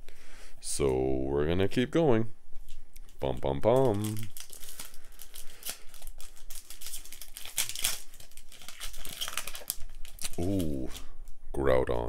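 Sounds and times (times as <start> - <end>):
foil wrapper tearing and crinkling: 3.6 - 11.0.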